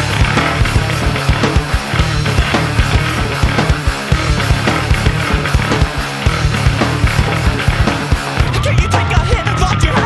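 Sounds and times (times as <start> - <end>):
heavy metal band playing: 0.0 - 10.0.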